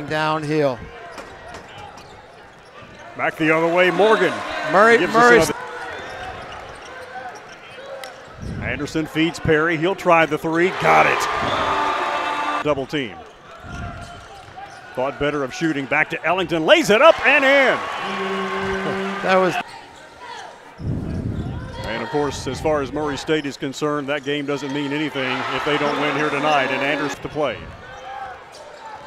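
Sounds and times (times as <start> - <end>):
arena noise: 0.0 - 29.0
murmur of crowd: 0.0 - 29.0.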